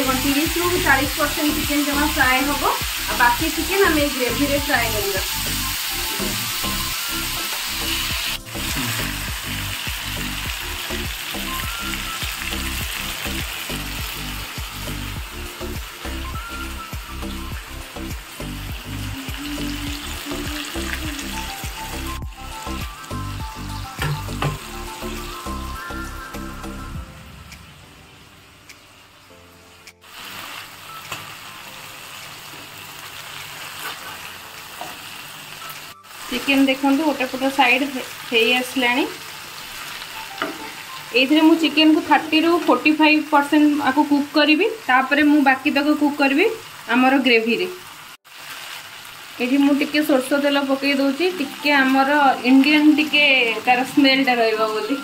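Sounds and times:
chicken sizzling in oil: 0.0 - 26.8, 28.2 - 55.0
music with steady beat: 0.2 - 28.1.

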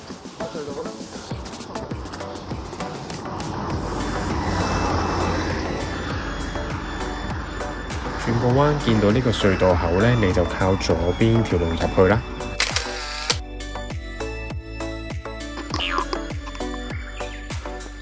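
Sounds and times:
background music with light beat: 0.0 - 18.0
vehicle driving past: 2.5 - 9.7.

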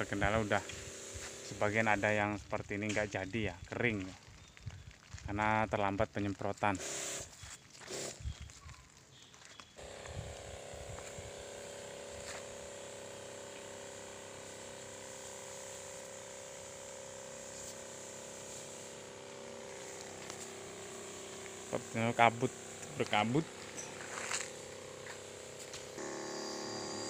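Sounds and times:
spray hissing: 0.0 - 2.3, 9.8 - 27.0
sprayer pump hum: 0.0 - 3.3, 6.8 - 8.2, 9.8 - 27.0.

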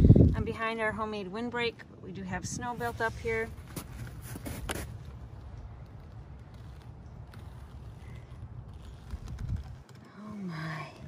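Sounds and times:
wind buffeting microphone: 0.0 - 1.1, 1.8 - 4.4, 8.8 - 10.0.

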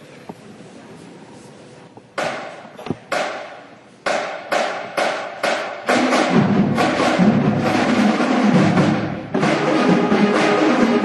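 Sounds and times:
drumline hits echoing: 2.2 - 11.0.

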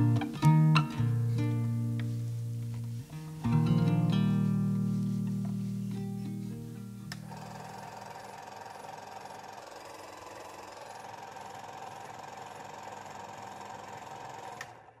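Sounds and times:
small machine whirring: 7.2 - 15.0.

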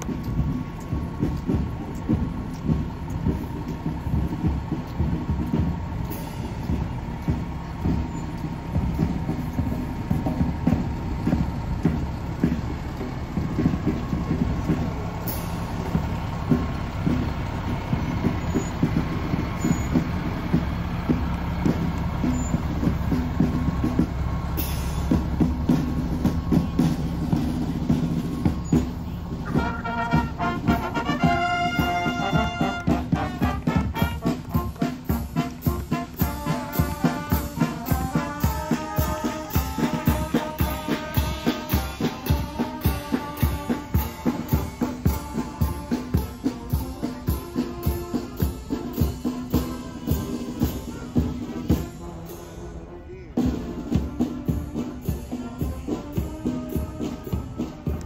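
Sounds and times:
brass band playing: 0.0 - 58.0
diesel truck engine rumbling: 0.0 - 58.0.

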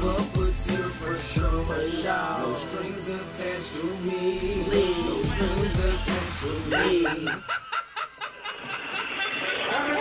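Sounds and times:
bass-heavy backing music: 0.0 - 7.5
person laughing: 4.7 - 10.0.

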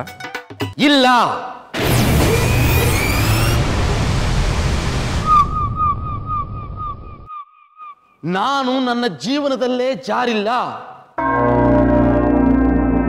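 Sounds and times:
loud noisy whoosh: 1.8 - 7.3
low rumble: 2.1 - 7.3.

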